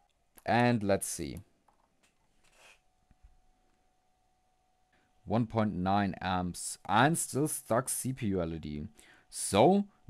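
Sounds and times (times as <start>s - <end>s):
faint rub: 2.4s - 2.8s.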